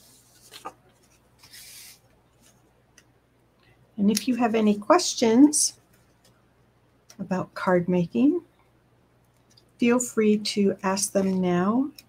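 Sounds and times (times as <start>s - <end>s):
paper rustling and brushing: 0.0s - 2.6s.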